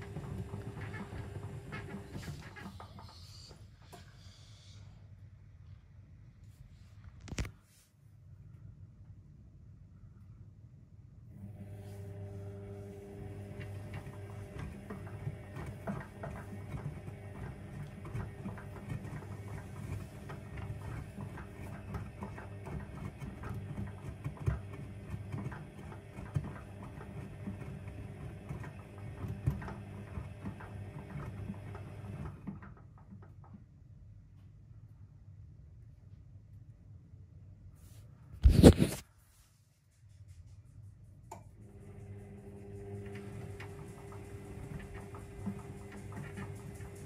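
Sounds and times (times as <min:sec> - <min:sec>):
washing machine motor humming: 0:00.0 - 0:04.1, 0:11.3 - 0:33.5, 0:41.6 - 0:47.0.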